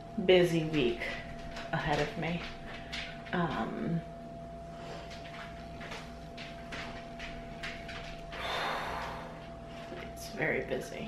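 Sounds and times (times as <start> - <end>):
faint breaths: 8.3 - 10.1.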